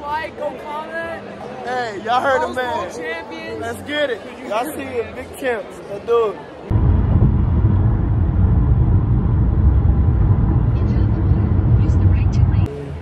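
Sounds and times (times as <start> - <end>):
car road and wind noise: 6.7 - 12.7.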